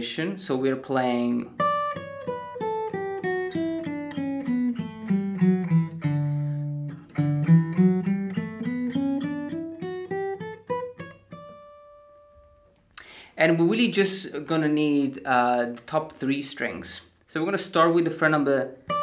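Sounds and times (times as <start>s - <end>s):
acoustic guitar fingerstyle notes: 1.3s - 12.9s, 18.8s - 19.0s.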